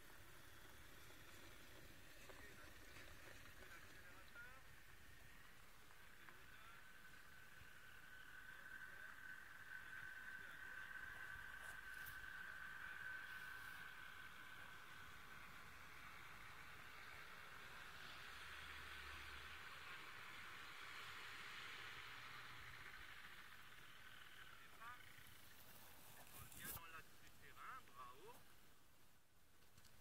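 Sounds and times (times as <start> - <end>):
distant paramotor engine drone: 0.0 - 30.0.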